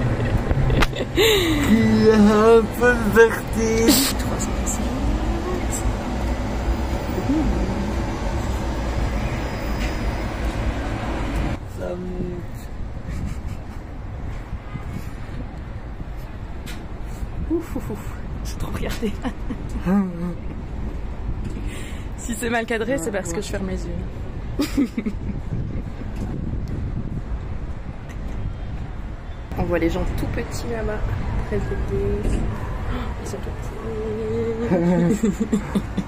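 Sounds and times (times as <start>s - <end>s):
low rumbling of ferris wheel gondola: 0.0s - 13.3s
person speaking: 1.1s - 6.1s, 22.8s - 23.6s
wind buffeting microphone: 10.2s - 34.6s.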